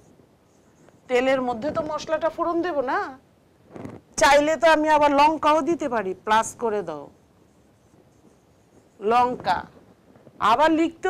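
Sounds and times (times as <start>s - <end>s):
marker scratching on whiteboard: 6.4s - 9.6s.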